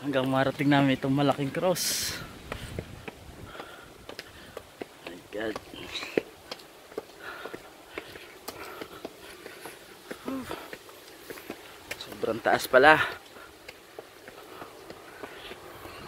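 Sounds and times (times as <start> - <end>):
footsteps on concrete steps: 0.0 - 16.0.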